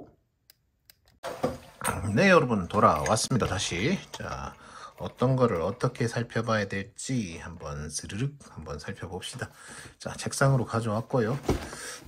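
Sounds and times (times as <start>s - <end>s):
man talking: 1.8s - 11.6s.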